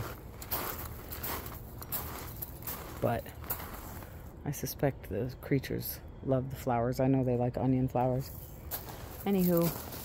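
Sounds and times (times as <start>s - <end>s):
footsteps crunching on gravel: 0.0s - 4.4s, 8.4s - 10.0s
low outdoor rumble: 0.0s - 10.0s.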